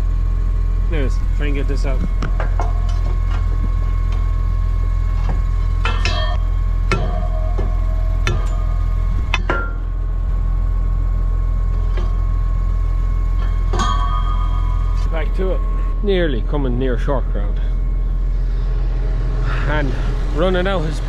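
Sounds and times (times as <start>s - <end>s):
tractor engine humming: 0.0s - 21.0s.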